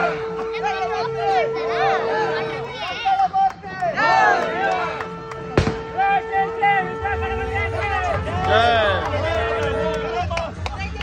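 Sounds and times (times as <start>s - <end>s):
sharp bang: 5.6s - 6.0s.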